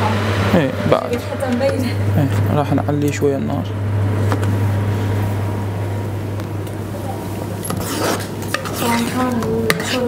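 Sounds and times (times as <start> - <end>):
low hum: 0.0 - 7.8
spoon scraping metal pot: 7.6 - 10.0.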